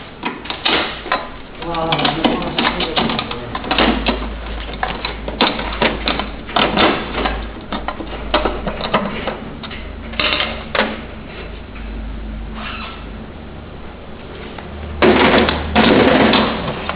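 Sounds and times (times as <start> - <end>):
low steady hum: 0.0 - 16.9.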